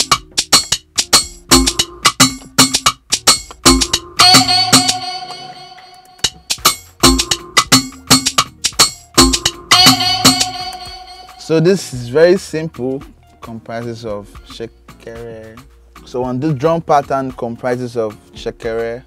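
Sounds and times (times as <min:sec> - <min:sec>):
kick drums: 0:00.0 - 0:04.9, 0:06.3 - 0:11.1
held high-pitched tone: 0:03.7 - 0:07.4, 0:09.2 - 0:11.6.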